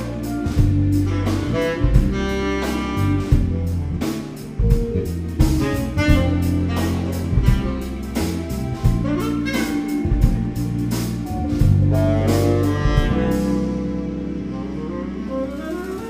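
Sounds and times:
drum kit: 0:00.0 - 0:16.0
live jazz band playing: 0:00.0 - 0:16.0
saxophone: 0:00.0 - 0:16.0.

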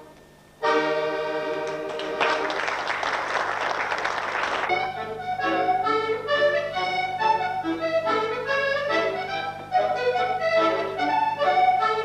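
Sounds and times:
solo accordion playing: 0:00.0 - 0:02.6, 0:03.8 - 0:12.0.

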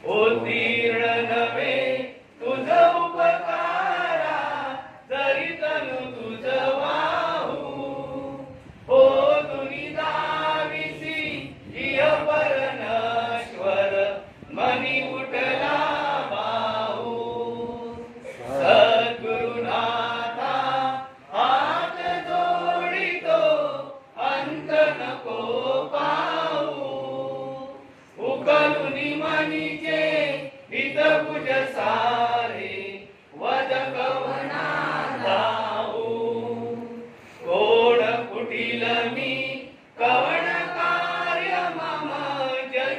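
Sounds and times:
group chanting in unison: 0:00.0 - 0:42.9.

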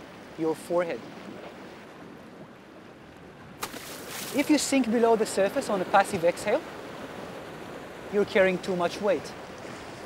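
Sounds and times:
open sea water: 0:00.0 - 0:10.0
wind: 0:00.0 - 0:10.0.

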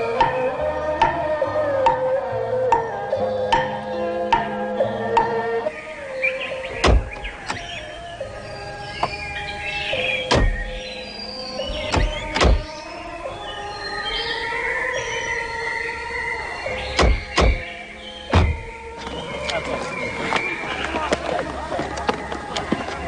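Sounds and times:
background music: 0:00.0 - 0:23.0
car doors shutting: 0:06.7 - 0:07.8, 0:10.2 - 0:10.9, 0:11.6 - 0:12.7, 0:16.9 - 0:17.7, 0:18.3 - 0:19.6.

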